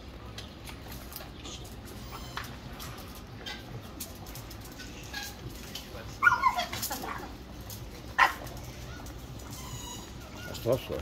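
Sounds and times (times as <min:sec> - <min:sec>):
dog barking: 0:08.2 - 0:08.5.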